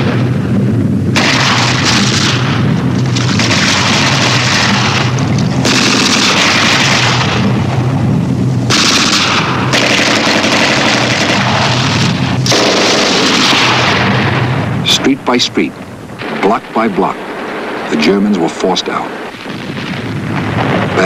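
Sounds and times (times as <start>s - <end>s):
machine-gun fire: 0.0s - 0.3s, 1.1s - 8.0s, 8.6s - 14.7s
explosions booming: 0.0s - 21.0s.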